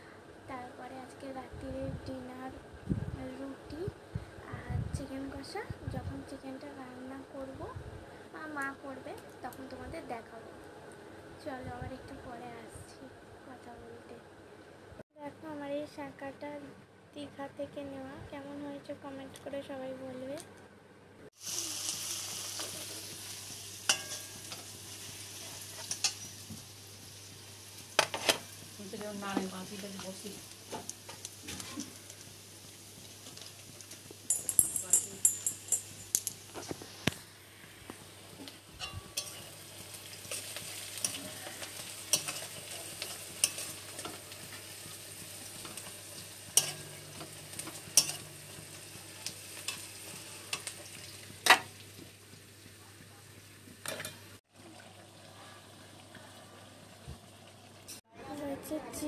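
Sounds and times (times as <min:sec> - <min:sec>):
food sizzling in hot oil: 0:21.3 - 0:52.8
utensil clinking against metal: 0:34.3 - 0:36.4.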